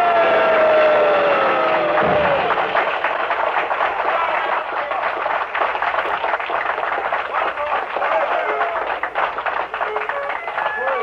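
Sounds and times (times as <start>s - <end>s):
audience applauding: 0.0s - 11.0s
low thump: 2.0s - 2.9s.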